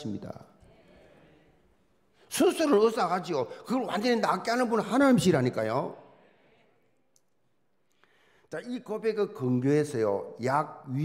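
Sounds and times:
man speaking: 0:02.3 - 0:05.9, 0:08.5 - 0:11.0.

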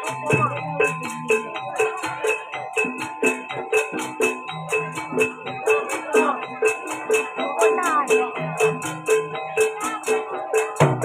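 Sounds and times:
ringing metal tones: 0:00.0 - 0:11.0.

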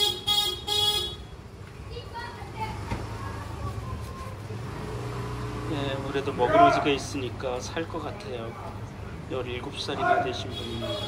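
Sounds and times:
vehicle horn honking: 0:00.0 - 0:01.4, 0:10.4 - 0:11.0
low traffic rumble: 0:00.0 - 0:11.0.

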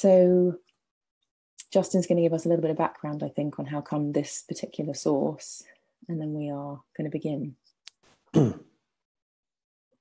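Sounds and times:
person clearing throat: 0:08.4 - 0:08.7.

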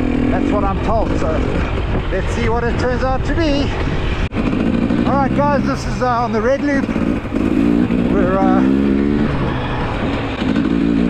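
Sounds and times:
motorcycle engine under throttle: 0:00.0 - 0:02.8, 0:03.5 - 0:11.0.

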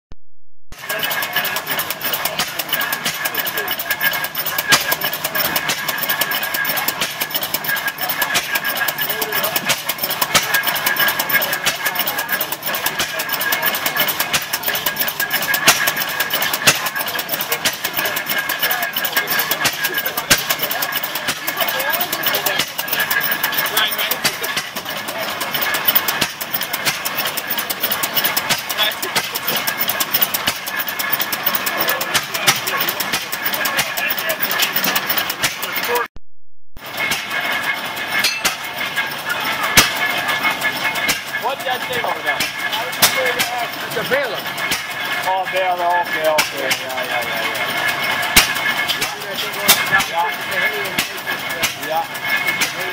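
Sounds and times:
stationary engine putt-putt running: 0:00.7 - 0:36.1, 0:36.8 - 0:52.9.

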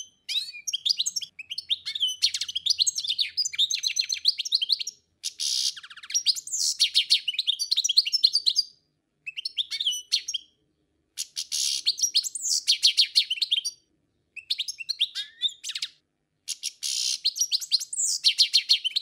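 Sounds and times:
small bird chirping and trilling: 0:00.0 - 0:10.6, 0:11.2 - 0:19.0.

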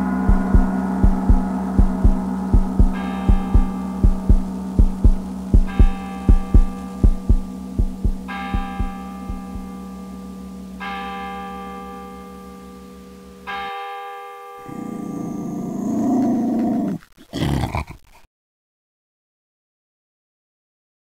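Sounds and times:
rising drone: 0:00.0 - 0:09.7
steady hum: 0:00.0 - 0:10.8
bell-like tone tolling: 0:00.0 - 0:12.6
low heartbeat-like thumps: 0:00.3 - 0:09.7.

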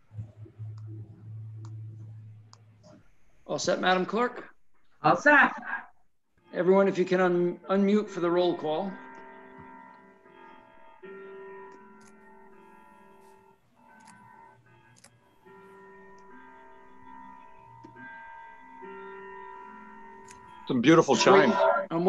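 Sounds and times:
chiming clock melody: 0:06.4 - 0:22.0.

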